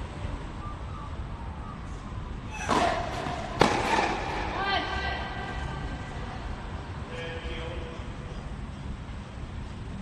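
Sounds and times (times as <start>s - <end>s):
tennis ball struck by racquet: 2.6s - 4.6s.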